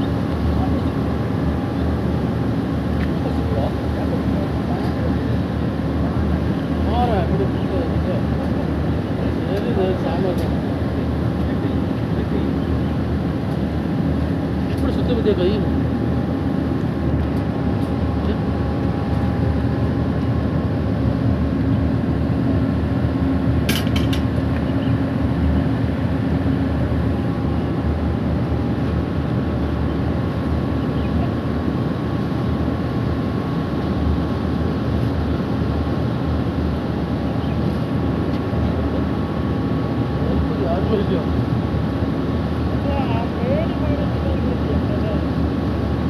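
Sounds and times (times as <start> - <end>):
low mechanical rumble: 0.0 - 46.0.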